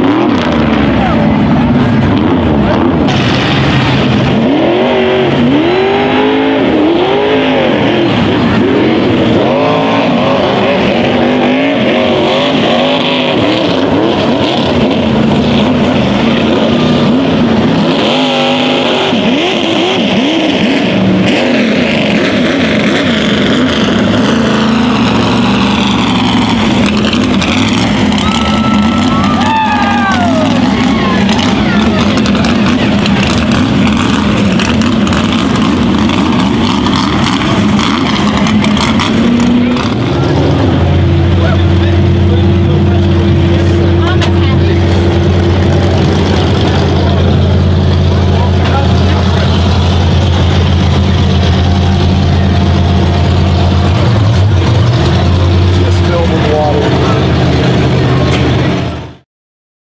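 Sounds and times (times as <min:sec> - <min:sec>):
truck engine idling: 0:00.0 - 0:04.4, 0:22.6 - 0:59.2
crowd voices: 0:00.0 - 0:59.2
truck engines running unevenly: 0:00.0 - 0:59.2.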